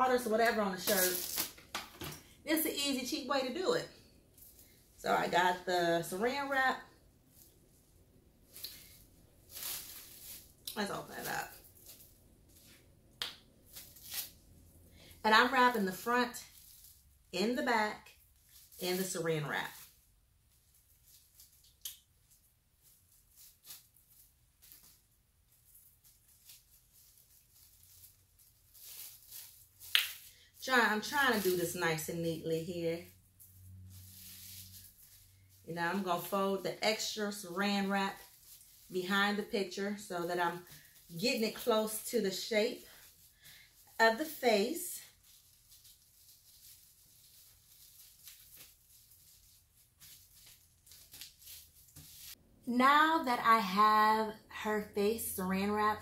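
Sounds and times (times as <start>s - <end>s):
plastic cling wrap crinkling: 0.1s - 3.2s, 8.4s - 52.4s.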